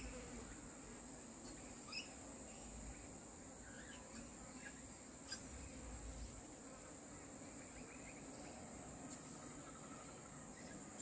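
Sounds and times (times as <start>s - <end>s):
faint bird chirps: 1.3s - 11.0s.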